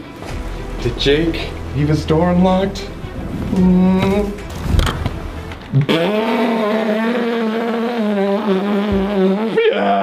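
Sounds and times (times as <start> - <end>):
person singing a long note: 5.8 - 9.6.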